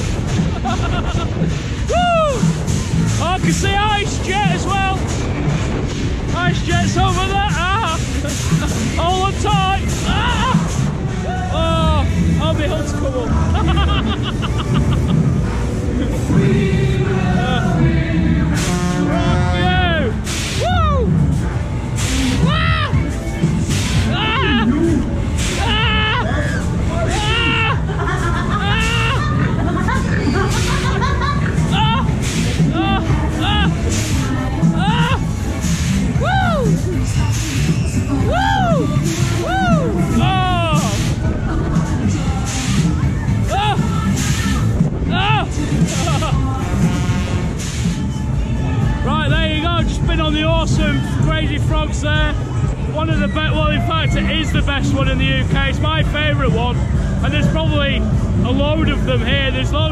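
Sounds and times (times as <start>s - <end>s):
loud music: 0.0s - 59.9s
low mechanical rumble: 0.0s - 59.9s
riders whooping: 0.2s - 2.9s, 24.0s - 46.6s
rising and falling whoops: 1.8s - 2.6s, 20.5s - 21.3s, 36.1s - 41.1s.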